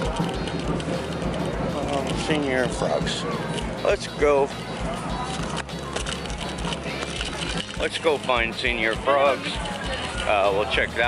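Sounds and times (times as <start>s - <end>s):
busy outdoor ambience: 0.0s - 11.0s
faint background music: 0.0s - 11.0s.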